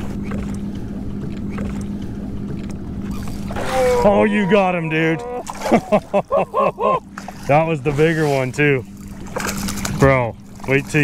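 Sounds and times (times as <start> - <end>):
steady low hum: 0.0 - 11.0
water lapping: 0.0 - 11.0
person speaking: 3.7 - 5.5.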